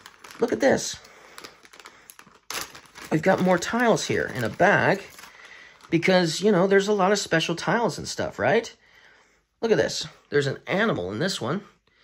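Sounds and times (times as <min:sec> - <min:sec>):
plastic bag crinkling: 0:00.0 - 0:06.8.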